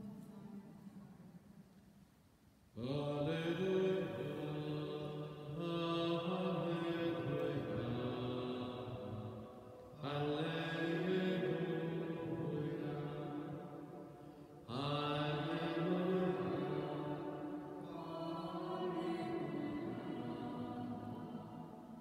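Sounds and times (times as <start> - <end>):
man chanting a liturgical melody: 2.8 - 9.2, 10.0 - 13.8, 14.7 - 20.6.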